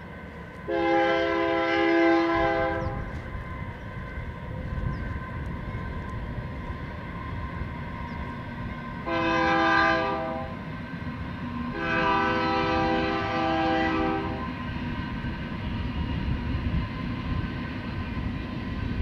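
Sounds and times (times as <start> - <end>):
horn blasts: 0.7 - 3.1, 9.0 - 10.6, 11.8 - 14.5.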